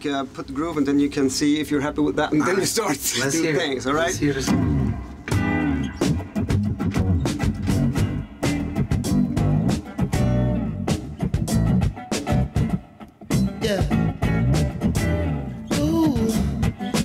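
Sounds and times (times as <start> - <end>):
guitar playing rhythmic groove: 4.0 - 17.0.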